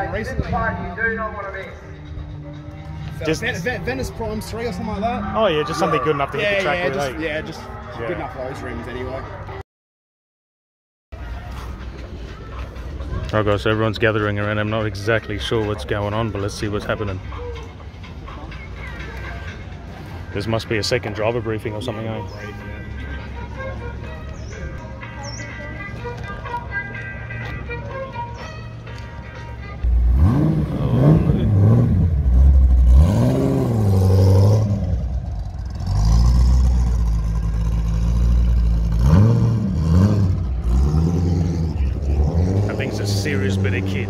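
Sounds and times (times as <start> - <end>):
distant voices: 11.2 - 44.0
car engine revving: 29.8 - 44.0.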